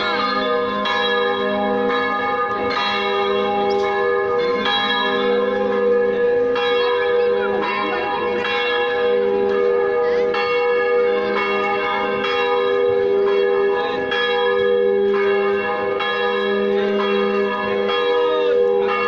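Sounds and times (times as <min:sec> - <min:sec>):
church bells ringing: 0:00.0 - 0:19.0.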